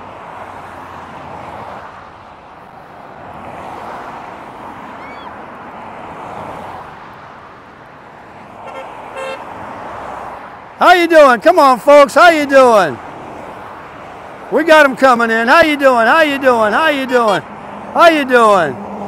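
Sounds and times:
cars passing: 0:00.0 - 0:19.0
car horn honk: 0:08.6 - 0:09.5, 0:16.6 - 0:17.5.

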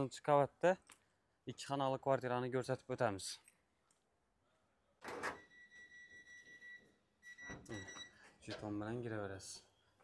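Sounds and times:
intercom reader beeping: 0:05.2 - 0:08.2.

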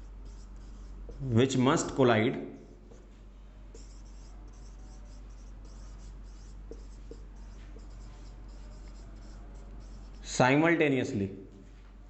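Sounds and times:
marker pen writing on whiteboard: 0:00.0 - 0:02.0, 0:03.7 - 0:10.4.

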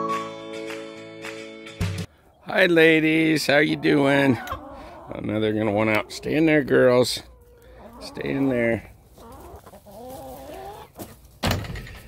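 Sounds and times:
hens clucking: 0:02.2 - 0:11.4.

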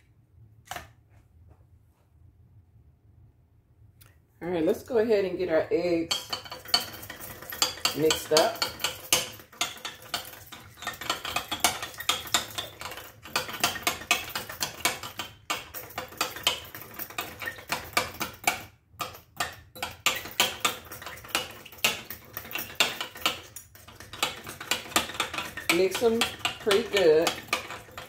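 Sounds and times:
whisk clicking against glass bowl: 0:06.1 - 0:28.0.

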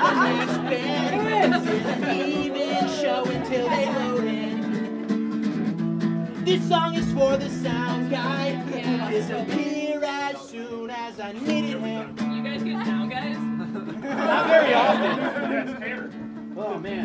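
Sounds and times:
person singing: 0:00.0 - 0:04.8, 0:06.4 - 0:12.2
acoustic guitar strumming: 0:00.0 - 0:17.0.

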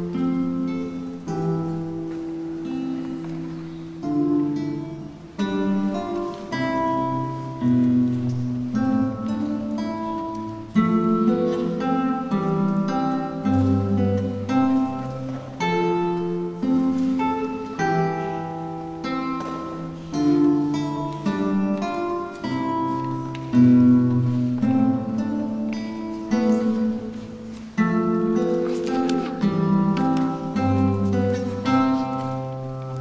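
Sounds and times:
classical guitar fingerstyle: 0:00.0 - 0:33.0.

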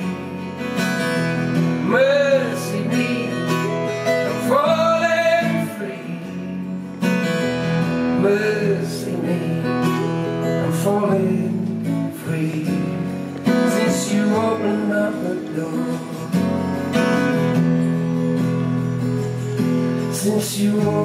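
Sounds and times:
acoustic guitar strumming chords: 0:00.0 - 0:21.0
person singing wordless phrases: 0:01.8 - 0:06.5, 0:10.6 - 0:16.4, 0:20.1 - 0:21.0.

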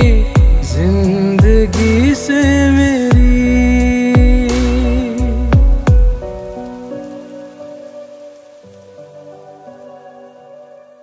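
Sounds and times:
faint hiss: 0:00.0 - 0:11.0
soft keyboard chords: 0:00.0 - 0:11.0.

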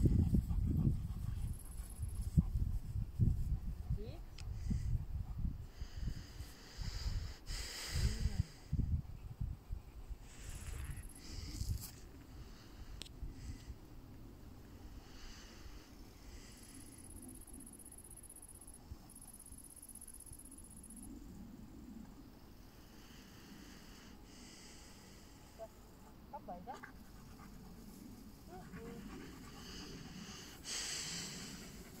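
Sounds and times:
dog panting: 0:00.0 - 0:05.7, 0:26.5 - 0:32.0
wind buffeting microphone: 0:00.0 - 0:11.9
breathy hiss: 0:05.6 - 0:08.8, 0:14.8 - 0:17.1, 0:22.5 - 0:26.0, 0:27.0 - 0:32.0.

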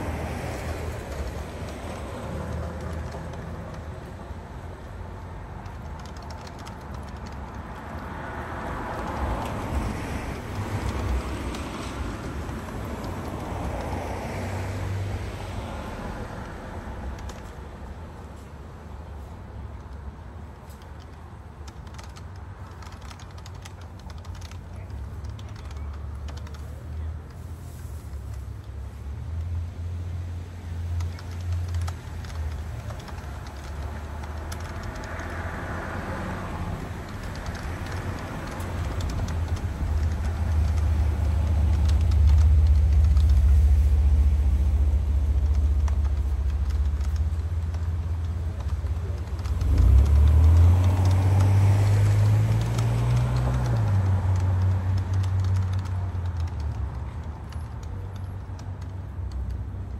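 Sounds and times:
typing on a keyboard: 0:00.0 - 0:18.0, 0:19.0 - 0:27.4, 0:30.6 - 0:59.9
vehicles passing: 0:00.0 - 0:59.9.

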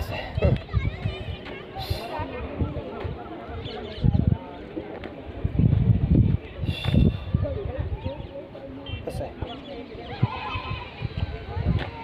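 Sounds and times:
faint distant voices: 0:00.0 - 0:12.0
wind buffeting microphone: 0:00.0 - 0:12.0.

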